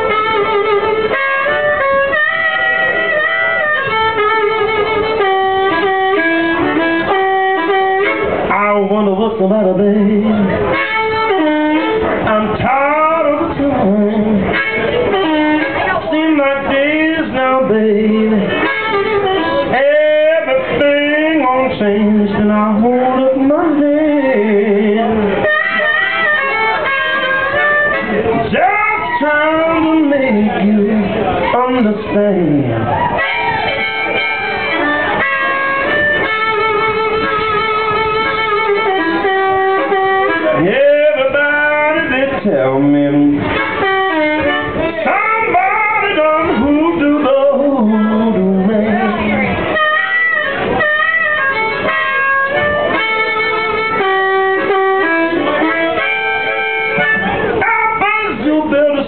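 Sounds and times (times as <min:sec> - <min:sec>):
man singing long bending notes: 0:00.0 - 0:33.3, 0:36.2 - 0:49.8, 0:51.5 - 0:59.0
amplified harmonica: 0:00.0 - 0:59.0
blues guitar accompaniment: 0:00.0 - 0:59.0.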